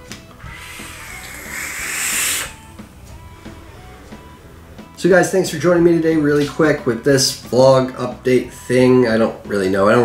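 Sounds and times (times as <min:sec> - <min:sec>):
breathy e-cigarette drag hiss: 0:00.4 - 0:02.9.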